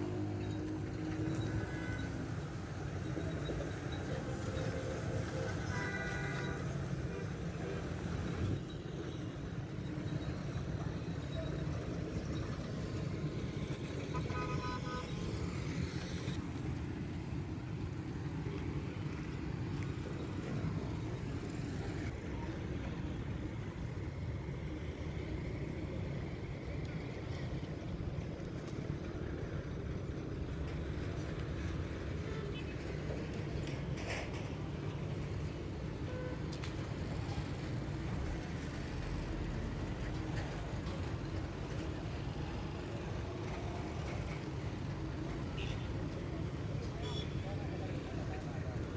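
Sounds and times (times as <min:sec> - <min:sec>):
road traffic rumble: 0:00.0 - 0:48.9
vehicle horn toot: 0:14.1 - 0:15.2.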